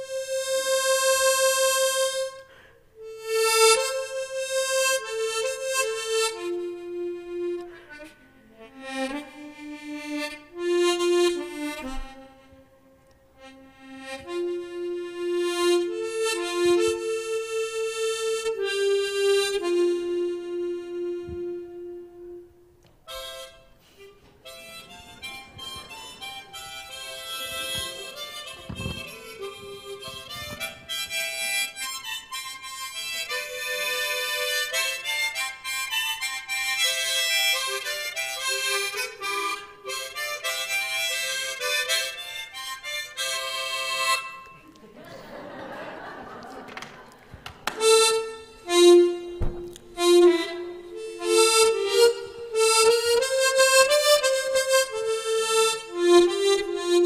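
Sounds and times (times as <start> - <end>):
harmonica melody: 0.0 - 45.6, 47.0 - 57.0.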